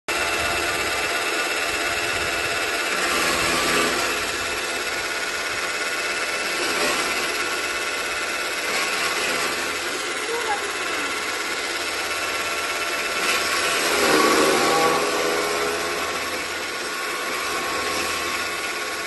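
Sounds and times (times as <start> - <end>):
chaff cutter motor whine: 0.1 - 19.0.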